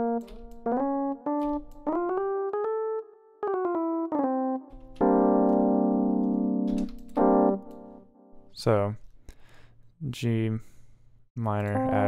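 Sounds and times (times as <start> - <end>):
electric piano chord: 0.0 - 8.0
electric piano single notes: 0.0 - 8.3.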